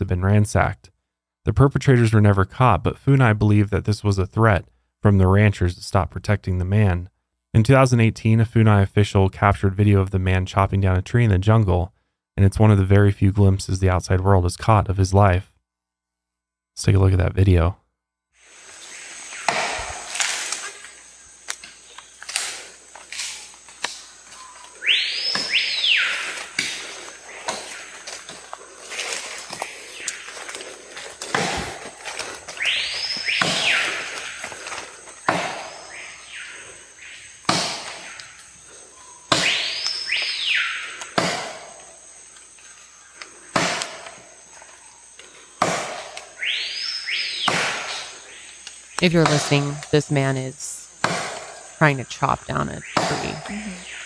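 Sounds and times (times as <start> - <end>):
high insect trill: 18.4 - 54.0
axe chopping into tree trunk: 19.5 - 20.6, 31.2 - 31.9, 33.3 - 33.8, 35.2 - 35.8, 37.5 - 38.1, 39.3 - 39.6, 41.2 - 41.7, 43.5 - 44.1, 45.6 - 46.2, 47.4 - 48.0, 51.0 - 51.5.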